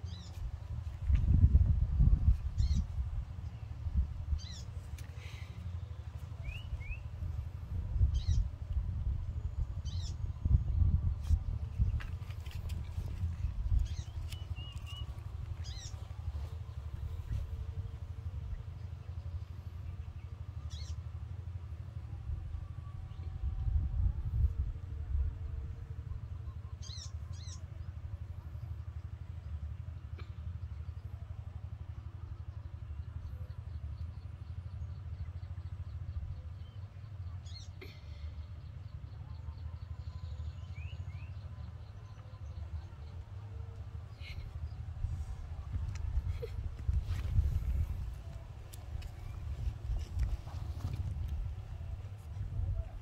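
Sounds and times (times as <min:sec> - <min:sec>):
wind rumble on microphone: 0:00.0 - 0:05.0, 0:06.3 - 0:20.2, 0:22.1 - 0:26.7, 0:44.0 - 0:53.0.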